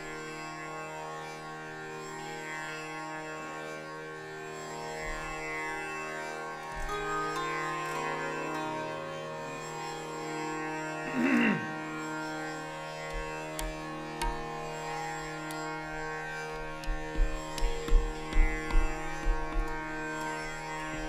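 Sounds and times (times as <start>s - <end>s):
harmonium notes: 0.0s - 21.0s
tanpura drone: 0.0s - 21.0s.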